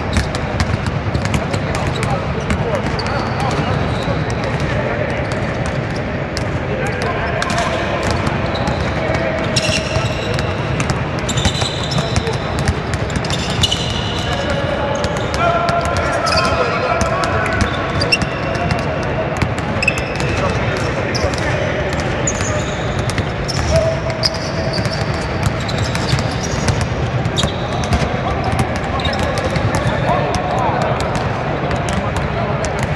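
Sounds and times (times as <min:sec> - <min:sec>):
sneakers squeaking on floor: 0:00.0 - 0:06.2, 0:06.9 - 0:18.8, 0:19.4 - 0:31.2
basketballs dribbling on hardwood: 0:00.0 - 0:32.9.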